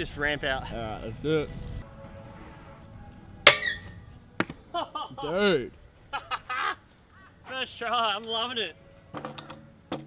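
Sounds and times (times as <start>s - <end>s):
scooter clanking on metal rail: 3.5s - 3.9s.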